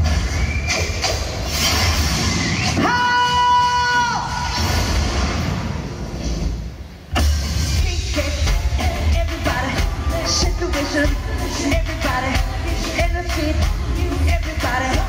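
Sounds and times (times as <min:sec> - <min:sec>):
live band music with heavy bass: 0:00.0 - 0:03.7, 0:04.3 - 0:15.0.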